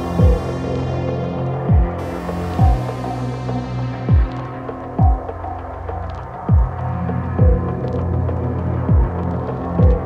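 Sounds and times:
deep kick drums: 0:00.0 - 0:00.6, 0:01.6 - 0:03.2, 0:04.0 - 0:05.5, 0:06.5 - 0:06.8, 0:07.4 - 0:07.9, 0:08.8 - 0:09.2, 0:09.8 - 0:10.0
low bass drone: 0:00.0 - 0:10.0.

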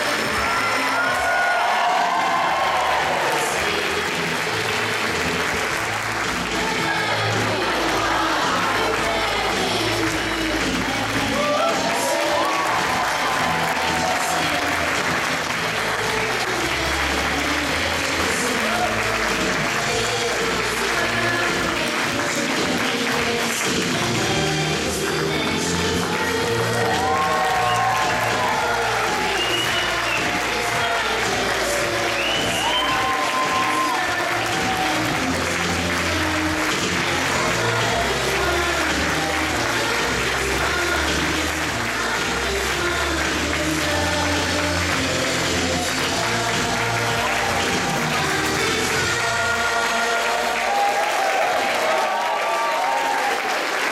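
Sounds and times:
audience applauding: 0:00.0 - 0:53.9
music playing: 0:00.0 - 0:53.9.

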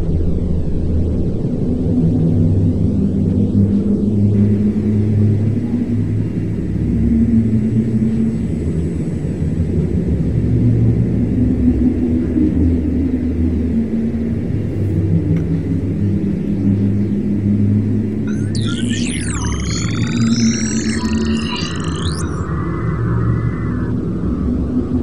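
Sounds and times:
low rumbling drone: 0:00.0 - 0:25.0
swooping electronic tones: 0:04.4 - 0:09.4, 0:18.1 - 0:24.8.

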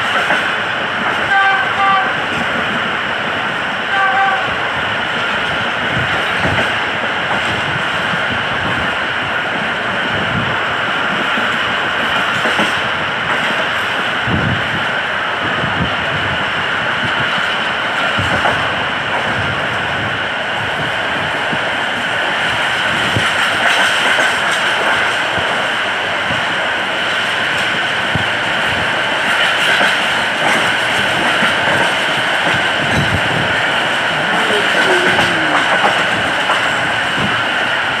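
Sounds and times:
train wheels rolling on rails: 0:00.0 - 0:38.0.

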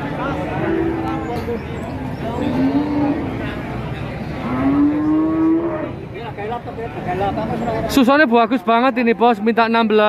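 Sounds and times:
cattle mooing: 0:02.4 - 0:03.4, 0:04.4 - 0:06.0.

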